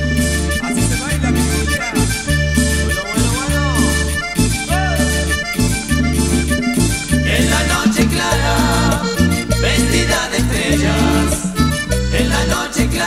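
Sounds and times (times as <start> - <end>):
accordion melody: 0.0 - 13.0
percussion: 0.0 - 13.0
pulsing bass line: 0.0 - 13.0.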